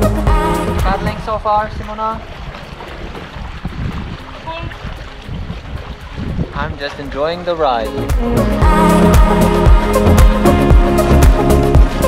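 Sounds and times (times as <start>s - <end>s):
wind rumbling on microphone: 0.7s - 8.3s
water sloshing around paddleboard: 1.0s - 8.1s.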